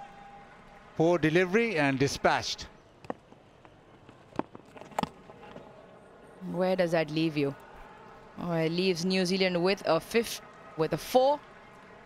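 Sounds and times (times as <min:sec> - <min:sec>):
faint outdoor ambience: 0:00.0 - 0:12.0.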